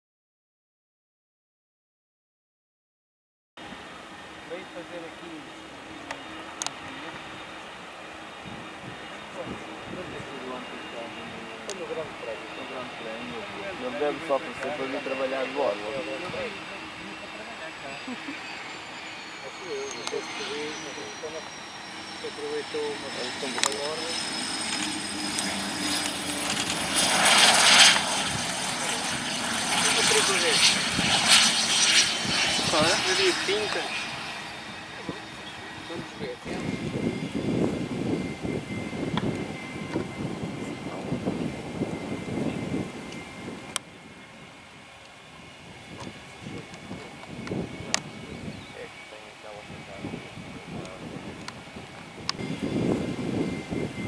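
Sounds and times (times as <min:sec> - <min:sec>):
jet landing with high whine: 0:03.6 - 0:54.0.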